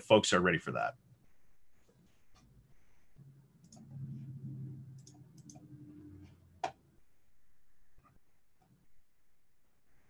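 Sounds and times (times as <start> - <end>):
low steady hum: 0.7 - 10.0.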